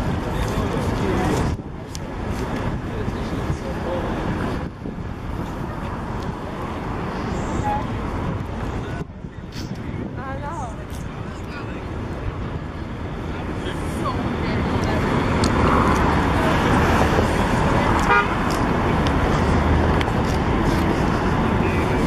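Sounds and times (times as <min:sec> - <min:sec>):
murmur of voices: 0:00.0 - 0:22.0
traffic noise: 0:00.0 - 0:22.0.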